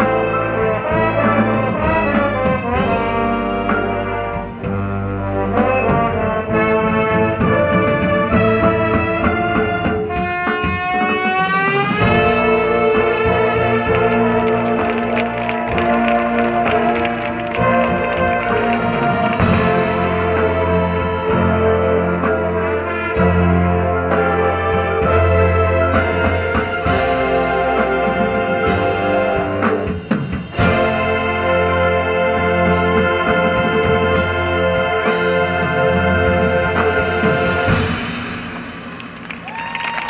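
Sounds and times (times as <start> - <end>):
brass holding chords: 0.0 - 38.3
marching band playing: 0.0 - 40.0
percussion hits: 10.1 - 21.8, 36.8 - 40.0.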